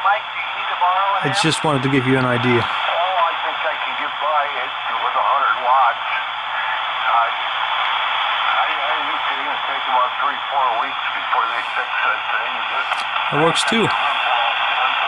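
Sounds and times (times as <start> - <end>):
radio band noise hiss: 0.0 - 15.0
weak single-sideband voice signals: 1.2 - 2.7, 8.5 - 15.0.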